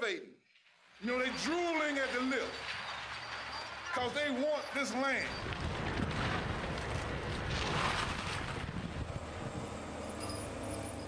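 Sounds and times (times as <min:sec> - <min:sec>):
demolition machinery engine rumble: 0:01.0 - 0:11.0.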